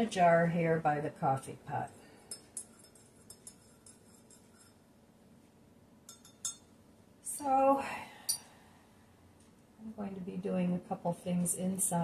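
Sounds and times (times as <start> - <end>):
spoon clinking in ceramic mug: 2.2 - 4.8, 6.1 - 6.7.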